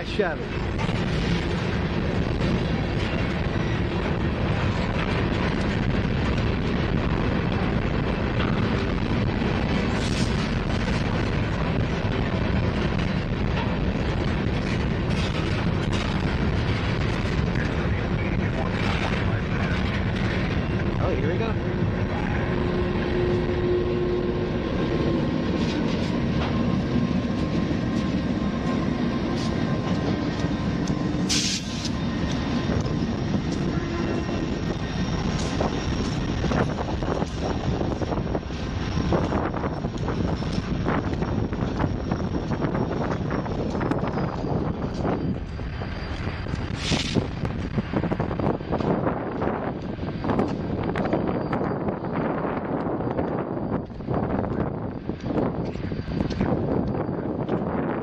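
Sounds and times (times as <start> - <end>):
wind noise on microphone: 0.0 - 58.0
train wheels clattering on rails: 0.3 - 23.6.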